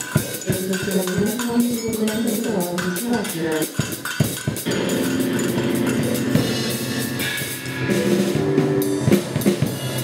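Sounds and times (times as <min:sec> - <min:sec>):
sharp percussion hits: 0:00.0 - 0:10.0
band holding pitched tones: 0:04.6 - 0:10.0.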